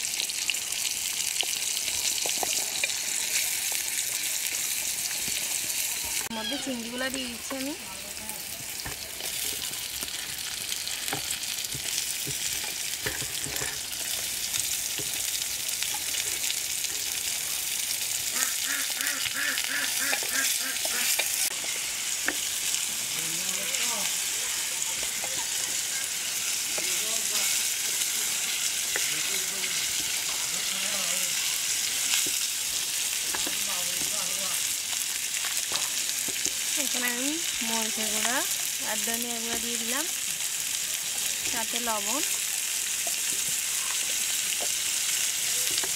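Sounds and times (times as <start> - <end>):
food sizzling in hot oil: 0.0 - 45.9
spatula scraping a pot: 19.9 - 22.5.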